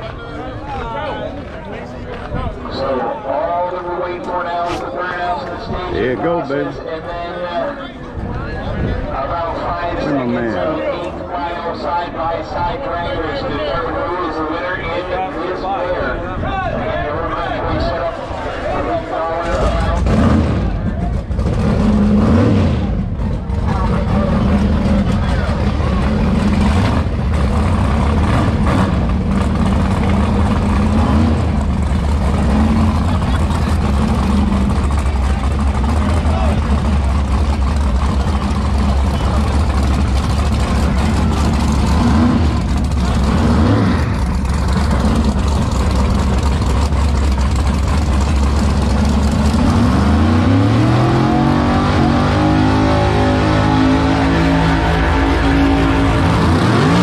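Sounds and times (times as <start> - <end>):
crowd chatter: 0.0 - 57.0
race car engine revving: 19.3 - 57.0.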